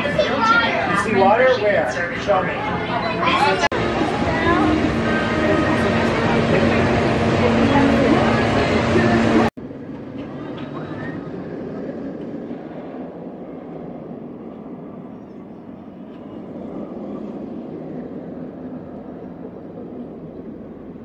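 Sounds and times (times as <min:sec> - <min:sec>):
roller coaster rumbling on track: 0:00.0 - 0:21.0
loud burst of sound: 0:03.6 - 0:09.5.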